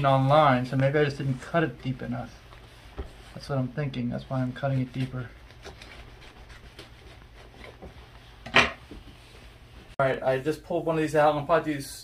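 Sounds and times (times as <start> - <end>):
knife scratching fruit rind: 5.5 - 7.8.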